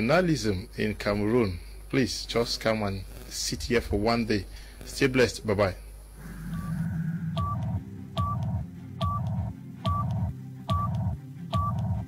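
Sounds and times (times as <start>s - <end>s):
low pulsing bass: 6.5s - 12.0s
high beep with click: 7.4s - 11.0s.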